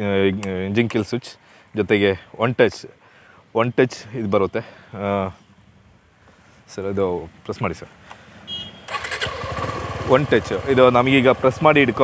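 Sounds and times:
motorcycle engine starting and idling: 8.9s - 12.0s.

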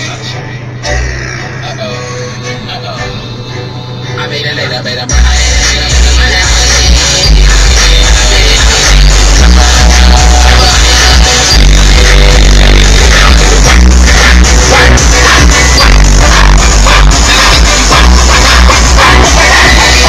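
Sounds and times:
electronic music with heavy sub-bass: 0.0s - 20.0s.

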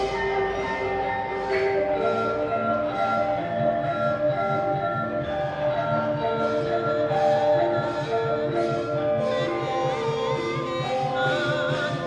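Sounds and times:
gamelan metallophones ringing: 0.0s - 12.0s.

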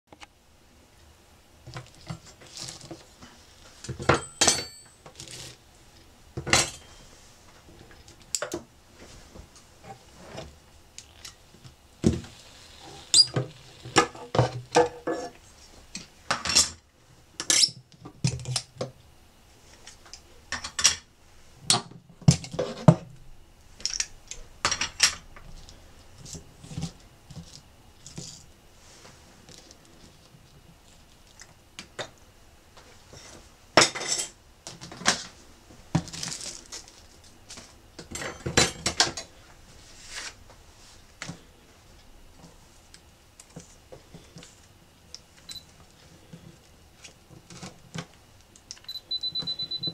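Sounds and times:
foil crinkling: 1.8s - 3.1s, 36.0s - 37.8s.

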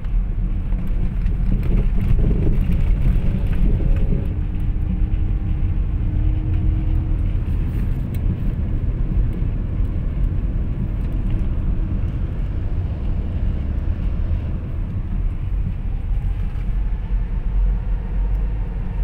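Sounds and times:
car cabin road rumble: 0.0s - 19.0s.

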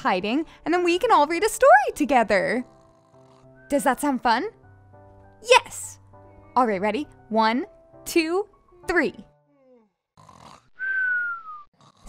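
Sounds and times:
cartoon snoring: 2.3s - 3.6s, 9.5s - 12.0s.

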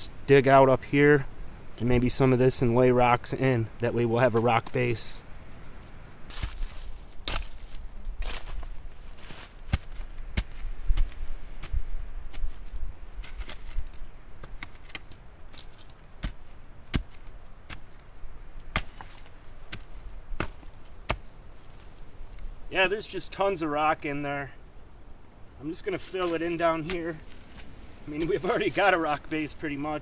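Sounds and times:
stick knocking on rock: 9.7s - 12.5s, 16.2s - 17.9s, 18.7s - 21.3s.

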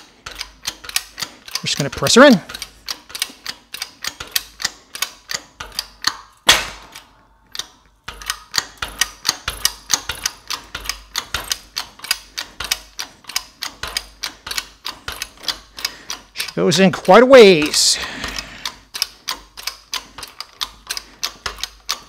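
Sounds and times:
shop press rapid mechanical clicks: 0.0s - 22.0s.

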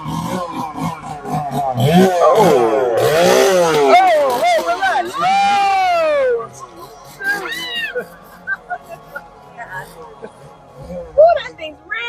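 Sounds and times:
people screaming and shrieking: 0.0s - 10.0s.

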